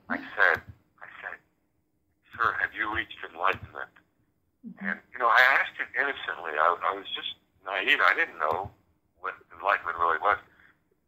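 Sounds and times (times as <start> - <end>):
voice talking over phone line: 2.3 - 4.0, 4.8 - 10.5.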